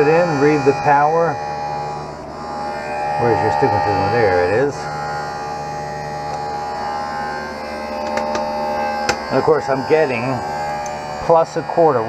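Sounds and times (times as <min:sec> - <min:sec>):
electrical hum of equipment: 0:00.0 - 0:12.0.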